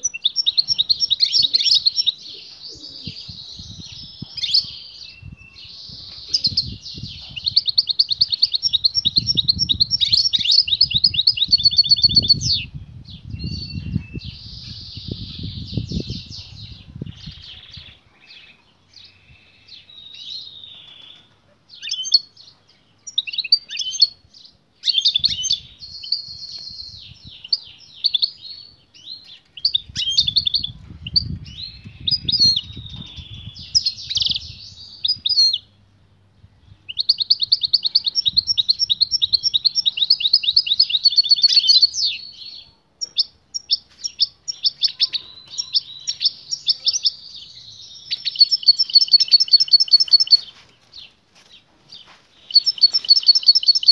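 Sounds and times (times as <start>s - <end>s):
goldfinch singing: 36.9s - 51.1s, 52.0s - 53.9s.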